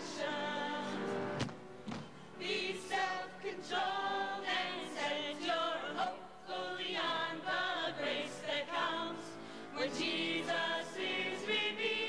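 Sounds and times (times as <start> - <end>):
choir singing: 0.0 - 1.4, 2.4 - 12.0.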